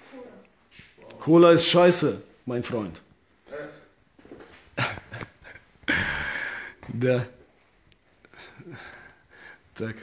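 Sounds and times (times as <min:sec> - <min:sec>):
man laughing: 0:04.8 - 0:06.5.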